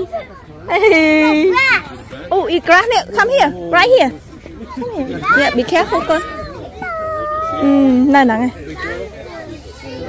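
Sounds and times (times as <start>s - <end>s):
children and adults talking: 0.0s - 10.0s.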